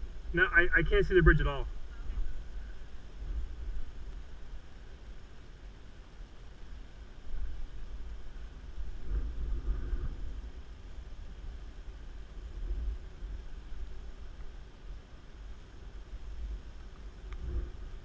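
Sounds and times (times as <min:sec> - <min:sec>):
wind rumble on microphone: 0:00.0 - 0:18.0.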